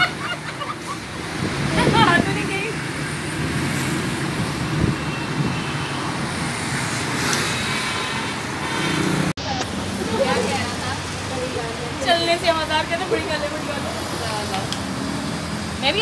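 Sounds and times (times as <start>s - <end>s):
road traffic noise: 0.0s - 16.0s
women talking: 1.7s - 2.8s, 9.4s - 14.8s, 15.8s - 16.0s.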